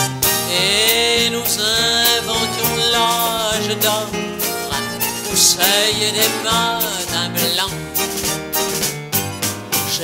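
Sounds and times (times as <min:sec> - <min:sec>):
live band instrumental: 0:00.0 - 0:10.0
sliding melody line: 0:00.0 - 0:10.0.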